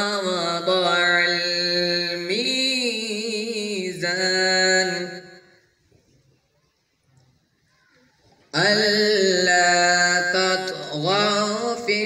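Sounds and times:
man chanting into a microphone: 0:00.0 - 0:05.6, 0:08.5 - 0:12.0.

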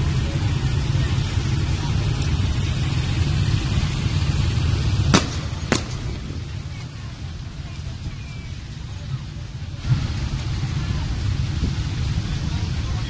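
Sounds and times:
motorcycle engines droning: 0:00.0 - 0:13.0.

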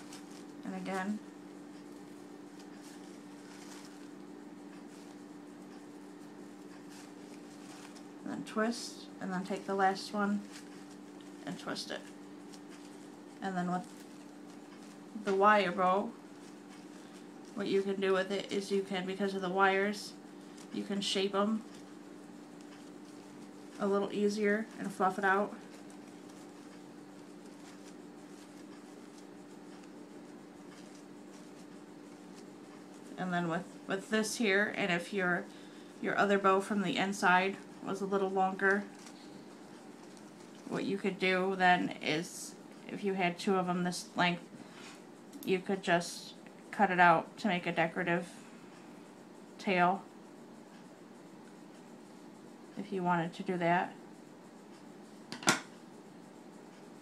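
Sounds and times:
ribbon rustling and crinkling: 0:00.0 - 0:45.5
steady hum: 0:00.0 - 0:57.0.

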